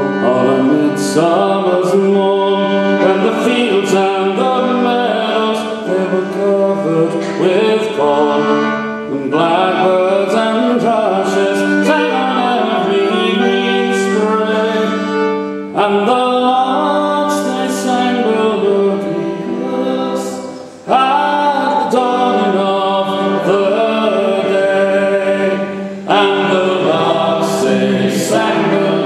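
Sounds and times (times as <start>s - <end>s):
bowed fiddle: 0.0s - 29.0s
voices singing folk song: 0.0s - 29.0s.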